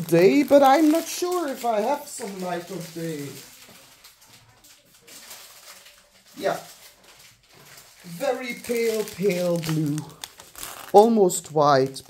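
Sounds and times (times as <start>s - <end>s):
faint room noise: 0.0s - 12.0s
person saying yeah: 8.1s - 10.1s.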